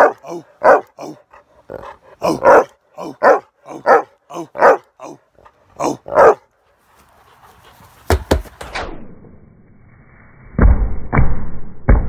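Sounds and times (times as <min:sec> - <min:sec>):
dog barking loudly: 0:00.0 - 0:06.5.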